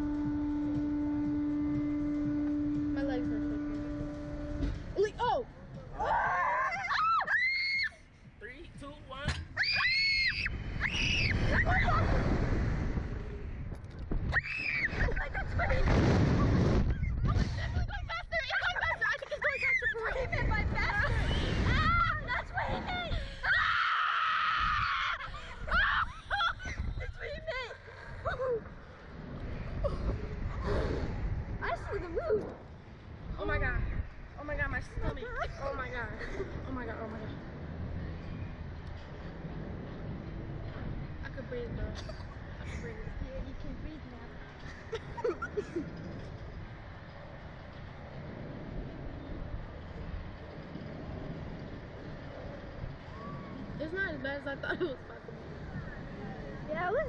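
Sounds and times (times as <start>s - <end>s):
people screaming: 6.0s - 8.0s, 9.6s - 12.3s, 19.2s - 20.3s, 21.0s - 26.8s
wind buffeting microphone: 8.2s - 57.0s.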